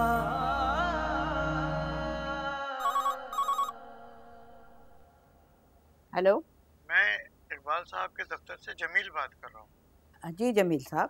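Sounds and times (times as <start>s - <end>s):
music: 0.0s - 3.2s
telephone ringing: 2.8s - 3.8s.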